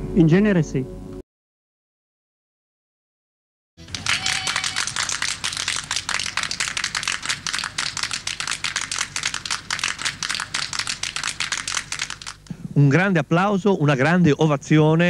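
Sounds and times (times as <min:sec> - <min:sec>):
people applauding: 0:03.8 - 0:12.5.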